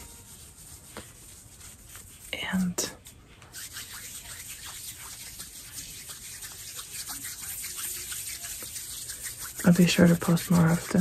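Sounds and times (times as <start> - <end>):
fingers rubbing crackles: 0.2 - 11.0.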